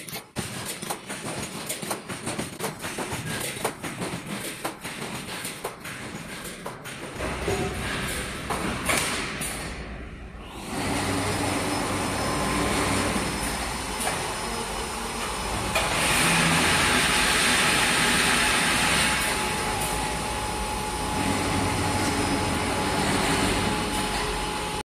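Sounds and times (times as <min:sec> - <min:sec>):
welding machine running: 0:00.0 - 0:24.8.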